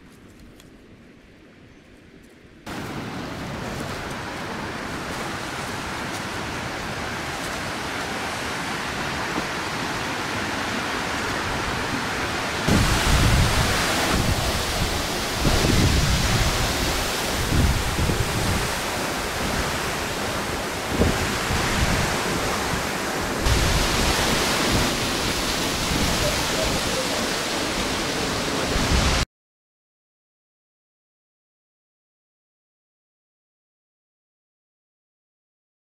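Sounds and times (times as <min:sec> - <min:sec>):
waterfall roaring: 0:02.7 - 0:29.2
wind buffeting microphone: 0:02.7 - 0:29.2.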